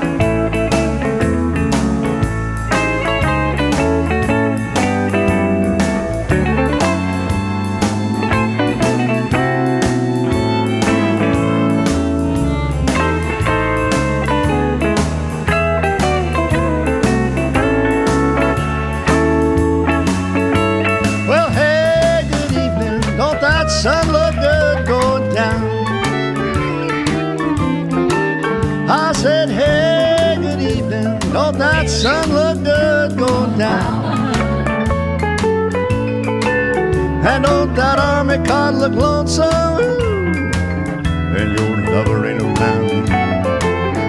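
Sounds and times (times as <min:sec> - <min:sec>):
country band blues shuffle: 0:00.0 - 0:44.0
sliding wavering guitar notes: 0:00.0 - 0:44.0.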